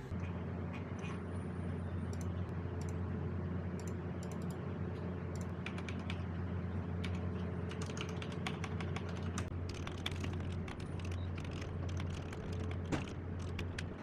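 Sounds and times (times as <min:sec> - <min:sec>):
mechanical keyboard typing: 0:05.4 - 0:06.2, 0:07.0 - 0:13.9.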